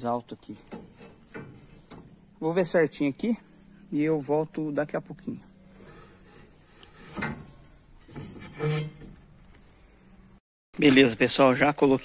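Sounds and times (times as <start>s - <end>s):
faint rubbing of metal bars: 0.5s - 2.4s, 5.5s - 10.4s
metal scraping on plywood: 0.5s - 2.4s, 5.6s - 9.8s.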